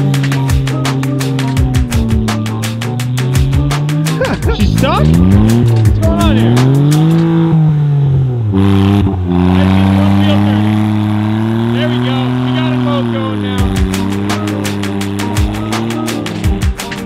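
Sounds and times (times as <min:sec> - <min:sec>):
music with steady beat: 0:00.0 - 0:07.5, 0:13.6 - 0:17.0
car engine revving: 0:00.0 - 0:17.0.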